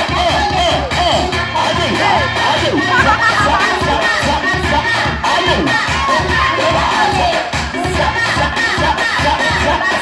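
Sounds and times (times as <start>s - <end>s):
crowd shouting and cheering: 0.0s - 10.0s
dance music with steady beat: 0.0s - 10.0s.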